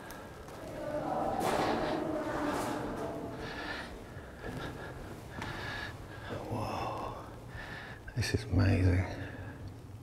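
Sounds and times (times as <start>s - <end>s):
person breathing: 0.0s - 8.1s.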